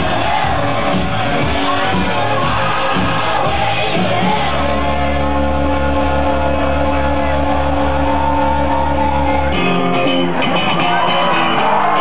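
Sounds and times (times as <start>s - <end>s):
crowd shouting: 0.0s - 12.0s
heavy steady bass: 0.0s - 12.0s
loud dance music: 0.0s - 12.0s.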